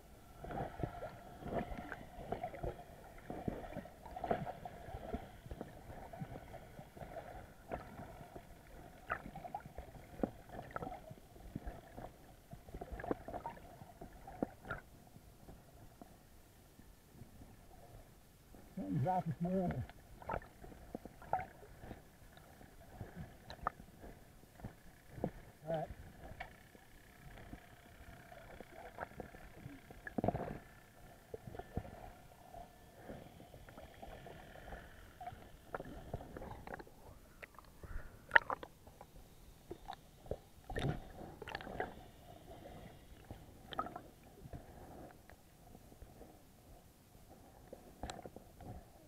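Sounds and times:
faint steady hum: 0.0 - 49.0
underwater knocks and clicks: 7.0 - 15.6, 19.6 - 27.6, 28.4 - 30.7, 38.3 - 39.1, 39.7 - 41.9, 48.0 - 48.8.

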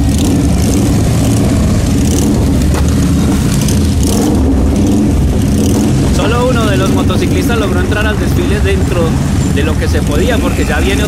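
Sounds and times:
motorcycle engines running: 0.0 - 11.0.

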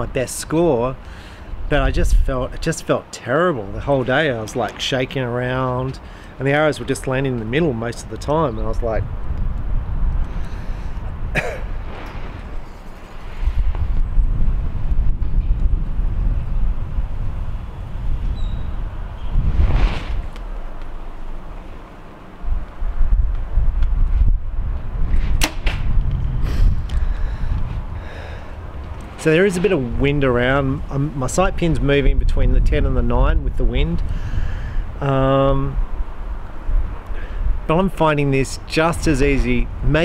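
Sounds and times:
wind rumbling on microphone: 0.0 - 40.0
arrow hitting target: 11.8 - 12.8, 19.5 - 20.4, 25.2 - 25.9
bow string snap: 25.4 - 26.2.

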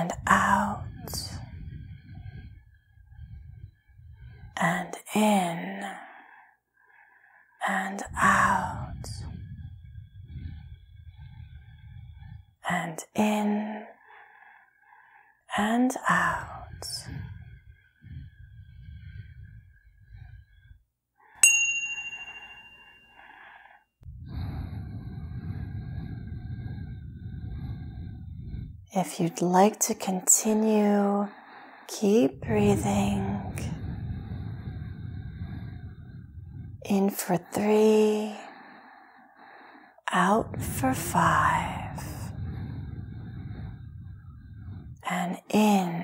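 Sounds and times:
chime ringing: 21.4 - 23.2
soft slow exhale: 31.3 - 36.9, 38.3 - 45.1.

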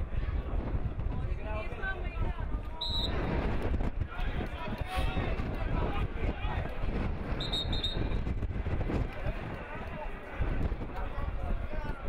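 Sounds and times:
wind rumble on microphone: 0.0 - 12.0
referee's whistle blasts: 2.8 - 3.2, 7.4 - 8.2.

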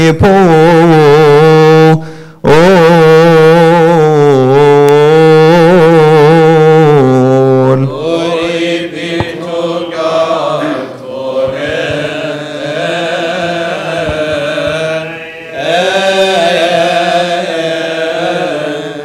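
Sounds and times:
man chanting: 0.0 - 19.0
group of voices chanting: 8.0 - 19.0.

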